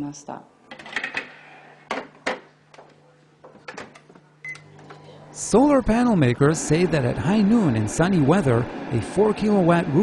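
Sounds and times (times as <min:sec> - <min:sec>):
low appliance hum: 0:00.0 - 0:10.0.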